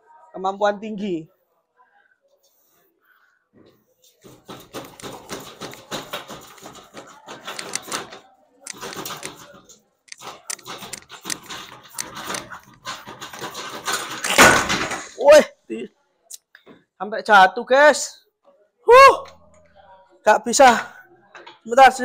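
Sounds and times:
wrench and bench creaking: 4.2s - 14.4s
loud thud: 14.2s - 15.2s.

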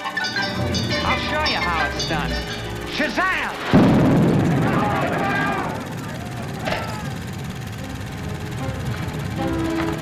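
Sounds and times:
thunderclap crash with rumble: 3.6s - 9.1s.

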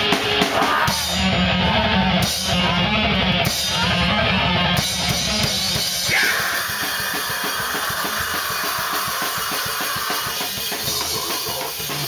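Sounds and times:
electric guitar: 0.0s - 12.0s
fast drumming with cymbals: 0.0s - 12.0s
live rock band playing: 0.0s - 12.0s.

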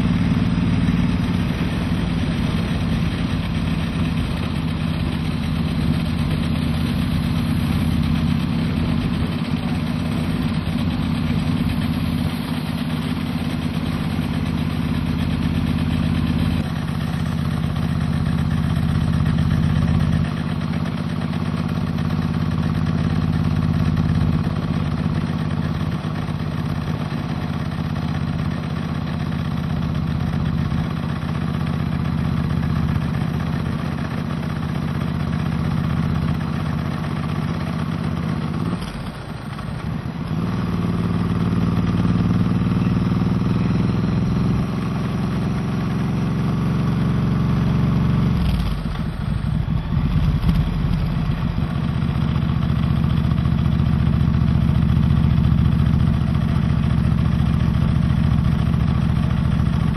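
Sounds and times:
vehicle engine droning: 0.0s - 59.9s.

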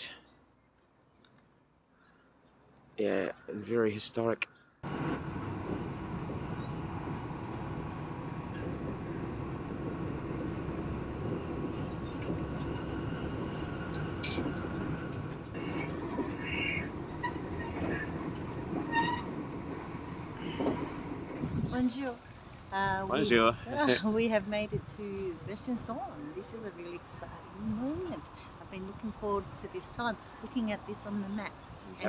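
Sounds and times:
train wheels rumbling on track: 4.8s - 31.5s.

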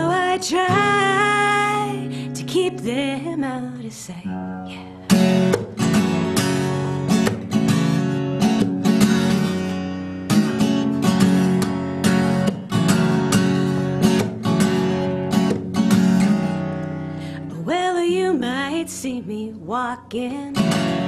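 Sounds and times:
guitar strumming: 0.0s - 19.8s, 20.5s - 21.0s.

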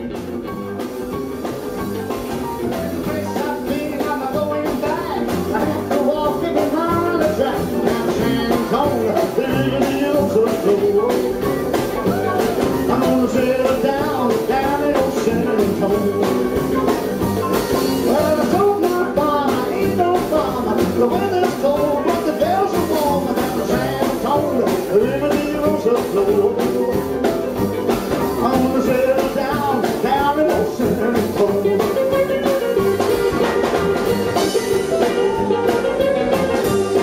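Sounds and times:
acoustic guitar: 0.0s - 37.0s
drum kit: 0.0s - 37.0s
electric guitar: 0.0s - 37.0s
upright bass: 0.0s - 37.0s
man singing: 2.7s - 27.4s, 28.1s - 33.0s.

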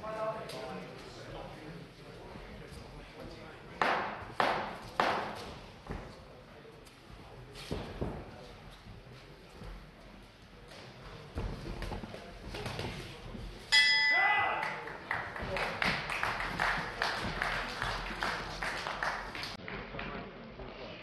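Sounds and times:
boxing ring bell: 13.7s - 14.8s.

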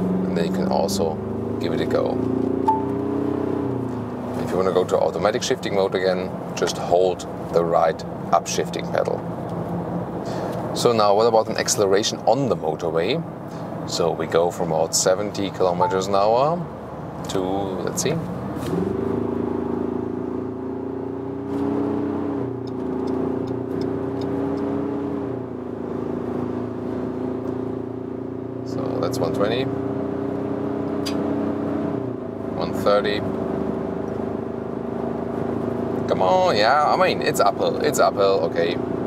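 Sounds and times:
diesel engine accelerating: 0.0s - 11.7s.

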